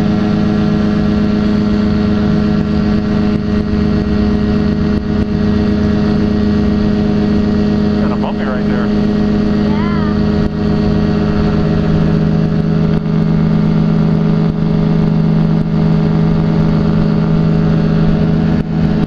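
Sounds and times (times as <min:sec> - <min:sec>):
light aircraft engine and propeller: 0:00.0 - 0:19.0.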